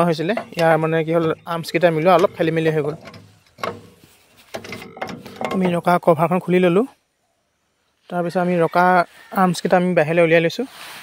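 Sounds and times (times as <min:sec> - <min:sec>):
faint handling noise: 0:00.0 - 0:05.9.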